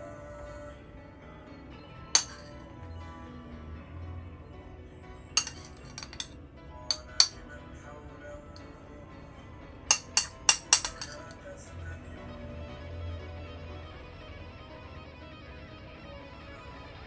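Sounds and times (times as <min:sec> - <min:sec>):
soft background music: 0:00.0 - 0:17.0
tableware clinking: 0:02.2 - 0:02.7, 0:05.4 - 0:07.4, 0:09.9 - 0:11.4.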